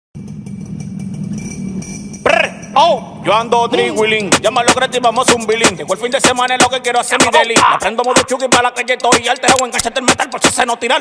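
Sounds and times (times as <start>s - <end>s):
motorcycle engine idling: 0.2s - 6.2s.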